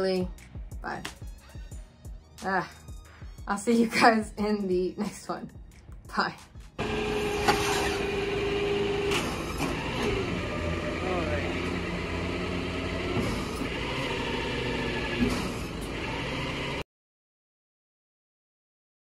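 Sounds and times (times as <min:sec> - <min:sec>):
hydraulic whine: 0:06.8 - 0:16.8
truck engine running: 0:06.8 - 0:16.8.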